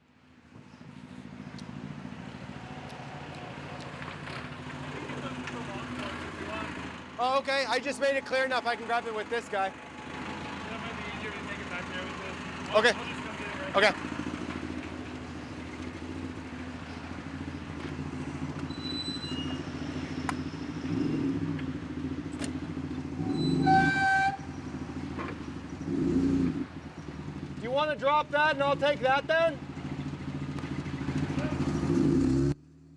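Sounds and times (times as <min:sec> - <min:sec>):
forklift engines revving: 0:00.8 - 0:32.6
horn toot: 0:23.2 - 0:24.5.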